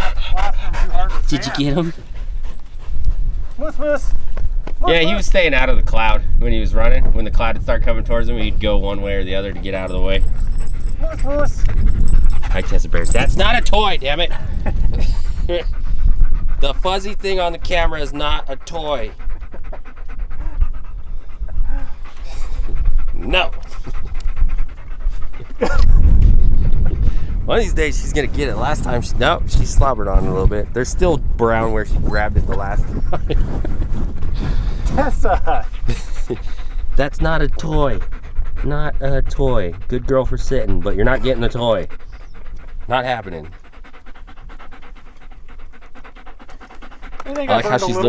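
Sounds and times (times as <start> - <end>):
steady low rumble: 0.0 - 47.3
dog panting rapidly: 0.0 - 48.0.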